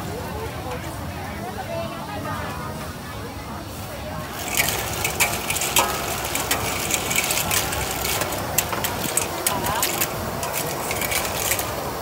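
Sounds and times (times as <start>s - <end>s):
clams rattling in a wok: 4.3s - 12.0s
metal spatula scraping: 4.3s - 12.0s.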